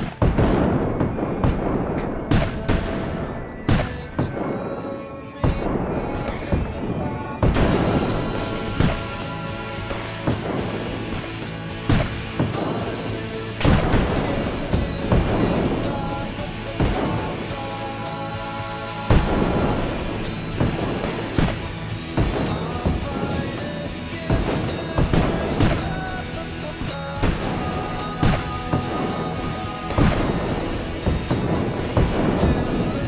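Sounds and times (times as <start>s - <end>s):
heavy percussive hits: 0.0s - 33.0s
sustained music notes: 0.0s - 33.0s.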